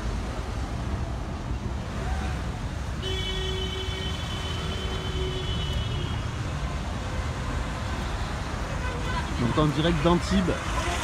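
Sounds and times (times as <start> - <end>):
rumble of street traffic: 0.0 - 11.0.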